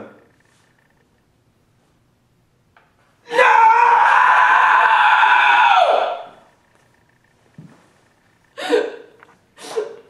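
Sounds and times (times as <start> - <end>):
woman screaming: 3.3 - 6.3.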